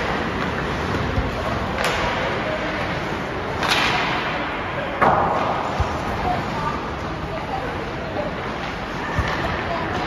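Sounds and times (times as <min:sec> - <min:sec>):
rink background noise: 0:00.0 - 0:10.0
hockey stick striking puck: 0:01.8 - 0:02.3, 0:03.6 - 0:04.3.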